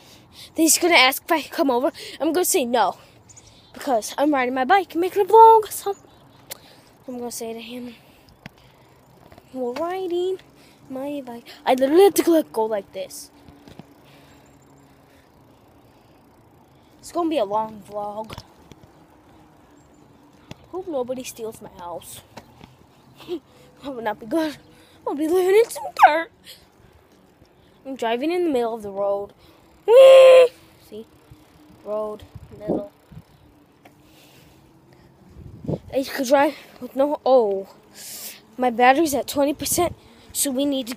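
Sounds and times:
bicycle rolling on asphalt: 0.0s - 40.9s.

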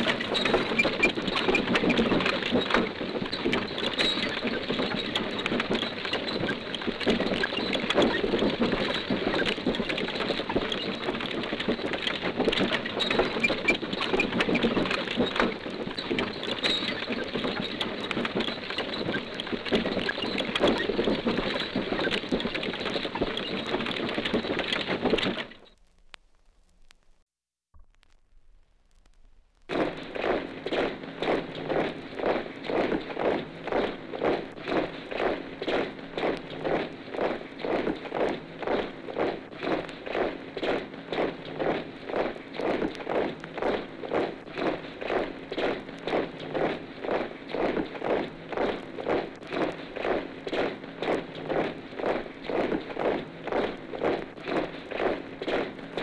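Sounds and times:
soldiers marching in step: 0.0s - 25.7s, 29.7s - 56.0s
clatter of wheels and hooves: 0.0s - 25.8s, 29.7s - 56.0s
record surface hiss: 0.0s - 56.0s.

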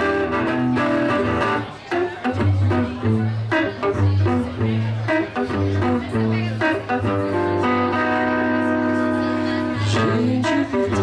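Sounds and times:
electric guitar picked notes: 0.0s - 11.0s.

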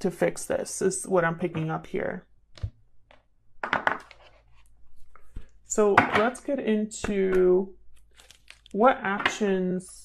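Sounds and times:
cards clicking and rustling: 8.0s - 8.8s.

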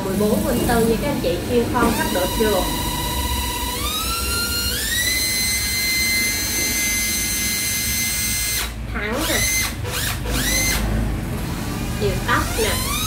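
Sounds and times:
cordless drill motor whine: 0.0s - 13.0s.

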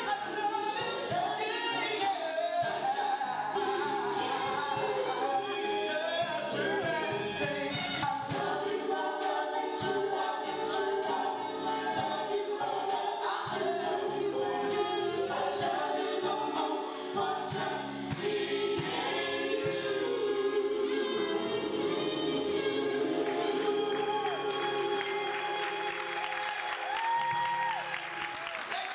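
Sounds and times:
gospel choir singing: 0.0s - 27.8s.

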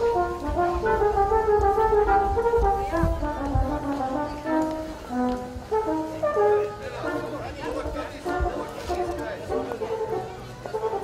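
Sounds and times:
people chattering: 0.0s - 11.0s
wind ensemble playing a charleston: 0.0s - 11.0s.

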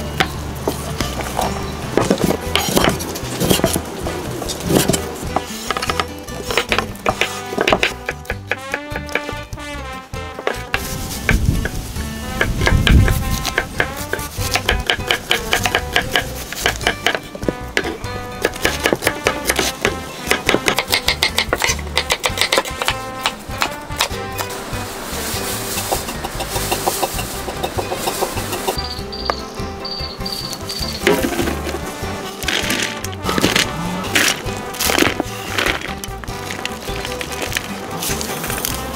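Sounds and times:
background music: 0.0s - 38.9s
knife chopping on wooden board: 4.7s - 9.4s, 12.4s - 24.1s.

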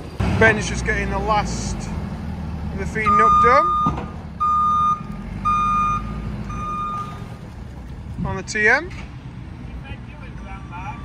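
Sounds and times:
diesel engine running: 0.0s - 11.0s
reversing alarm beeping: 3.0s - 7.3s, 10.3s - 11.0s.

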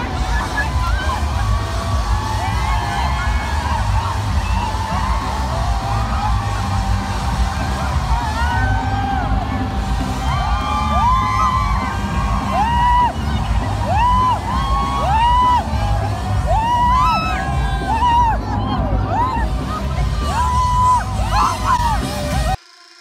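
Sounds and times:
fans screaming and whooping: 0.0s - 22.6s
live concert music with heavy bass: 0.0s - 23.0s.

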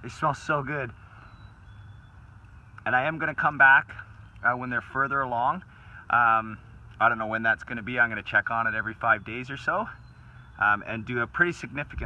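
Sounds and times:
man speaking: 0.0s - 1.0s, 2.8s - 10.0s, 10.6s - 12.0s
faint outdoor background rush: 0.0s - 12.0s.

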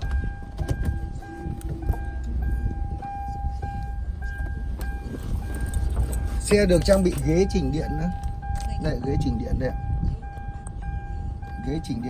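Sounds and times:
car engine idling: 0.0s - 12.0s
car warning chime beeping: 0.0s - 12.0s.

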